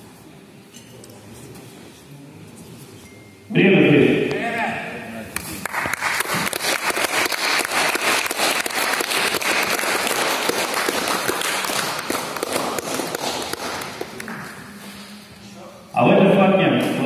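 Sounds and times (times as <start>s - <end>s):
crowd applauding: 5.4s - 14.6s.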